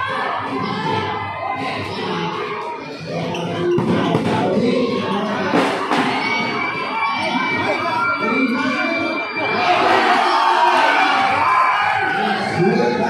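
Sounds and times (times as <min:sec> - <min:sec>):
crowd shouting and cheering: 0:00.0 - 0:13.0.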